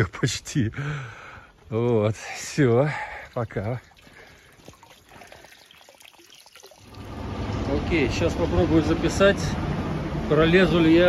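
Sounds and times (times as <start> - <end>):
water running in a channel: 0.9 - 8.0.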